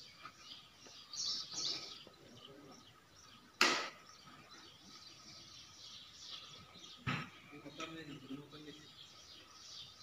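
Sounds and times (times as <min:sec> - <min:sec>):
faint bird chirping: 0:00.0 - 0:10.0.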